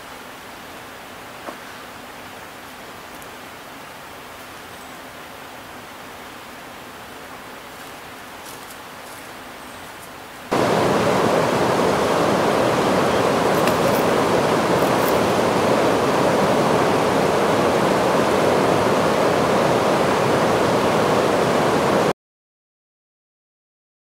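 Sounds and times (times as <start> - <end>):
river rapids rushing: 0.1 - 22.1.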